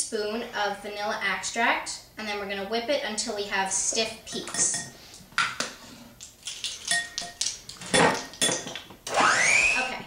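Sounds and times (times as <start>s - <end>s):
glass bottle and utensils clinking: 4.3s - 4.9s, 6.5s - 8.8s.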